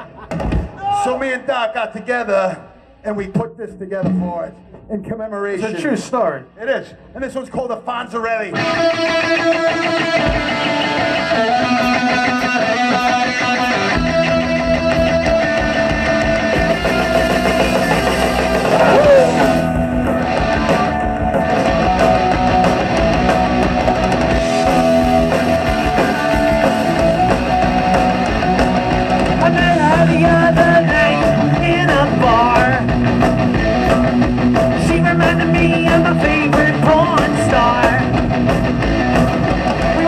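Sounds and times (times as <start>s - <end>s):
punk rock band playing: 0.0s - 1.2s, 3.8s - 6.1s, 8.5s - 40.0s
electric guitar playing: 8.5s - 40.0s.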